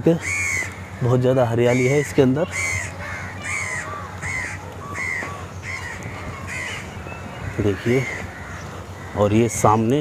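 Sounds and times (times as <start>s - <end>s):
crow cawing: 0.2s - 9.5s.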